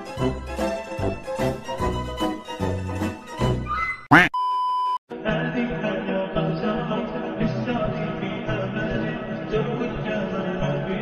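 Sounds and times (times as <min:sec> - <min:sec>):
music: 0:00.0 - 0:03.8, 0:05.1 - 0:11.0.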